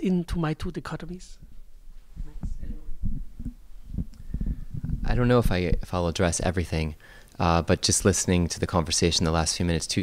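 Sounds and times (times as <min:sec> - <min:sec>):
microphone handling thumps: 0:01.4 - 0:05.9.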